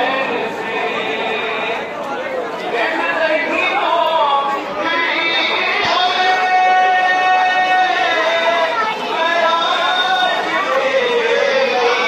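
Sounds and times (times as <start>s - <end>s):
man reciting melodically: 0.0s - 2.0s, 2.6s - 12.0s
crowd murmur: 0.0s - 12.0s.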